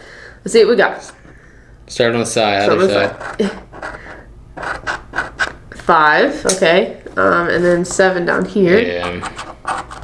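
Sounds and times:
scratch card being scraped: 2.8s - 5.6s, 8.9s - 10.0s.

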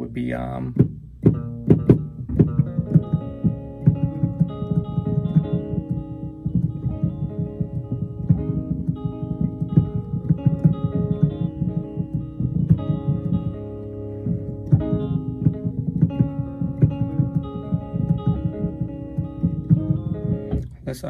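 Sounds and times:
electric guitar plucked notes: 0.0s - 21.0s
low bass notes: 0.0s - 21.0s.

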